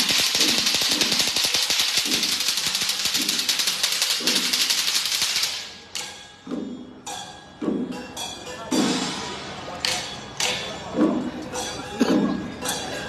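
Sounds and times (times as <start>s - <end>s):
firecrackers crackling: 0.0s - 6.1s
low percussion beat: 0.0s - 13.0s.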